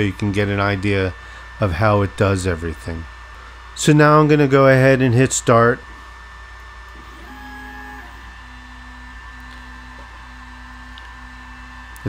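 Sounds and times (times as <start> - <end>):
fan hum: 0.0 - 12.0
stepper motors whining: 0.0 - 12.0.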